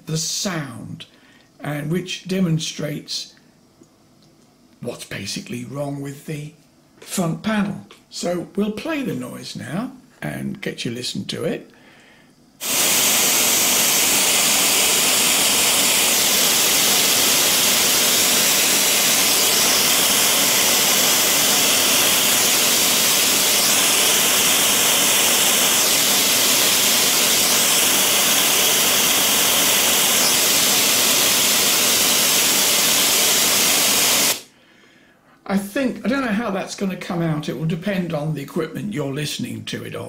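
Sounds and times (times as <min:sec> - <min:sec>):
loud steady white noise hiss: 0:00.0 - 0:03.8, 0:04.6 - 0:40.0.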